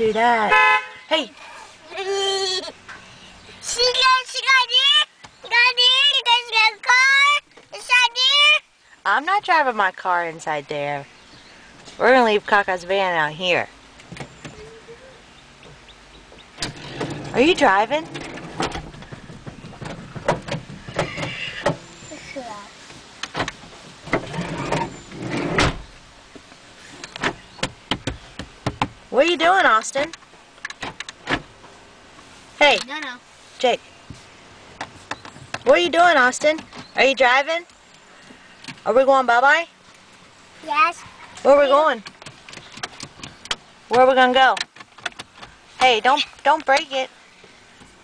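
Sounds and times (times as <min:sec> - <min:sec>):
clicks and knocks of vehicle controls: 0:15.6 - 0:21.9, 0:23.2 - 0:29.0, 0:29.6 - 0:31.8, 0:34.8 - 0:38.9, 0:41.8 - 0:48.0
light clicks and knocks: 0:42.0 - 0:48.0.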